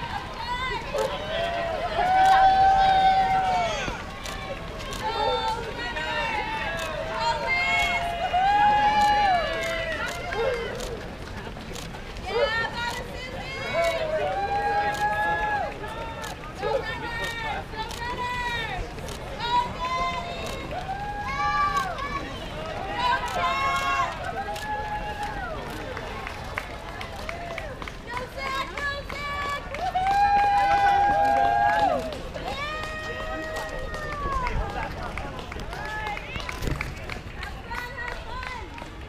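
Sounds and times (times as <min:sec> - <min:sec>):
runners' footsteps on road: 0:00.0 - 0:39.0
spectators shouting and cheering: 0:00.0 - 0:39.0.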